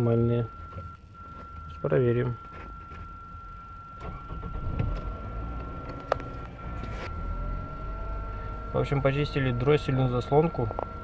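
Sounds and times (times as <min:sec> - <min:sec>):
car engine starting and idling: 0:03.1 - 0:11.0.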